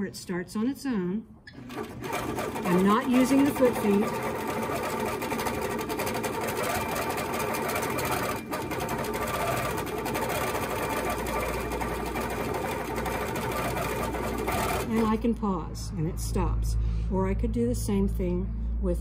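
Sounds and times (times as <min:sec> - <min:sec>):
quilting machine stitching: 0:01.5 - 0:15.3.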